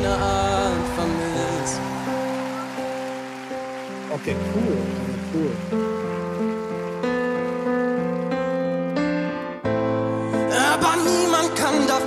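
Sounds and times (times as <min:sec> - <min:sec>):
slow piano ballad: 0:00.0 - 0:12.0.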